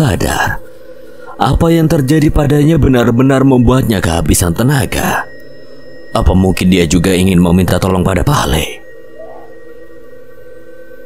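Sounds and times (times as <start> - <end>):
dark ambient drone music: 0.0 - 11.0.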